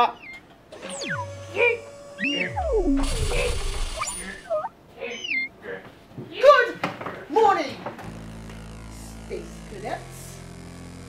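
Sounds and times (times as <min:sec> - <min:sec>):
squeaky whistle-like sound effects: 0:00.0 - 0:05.5.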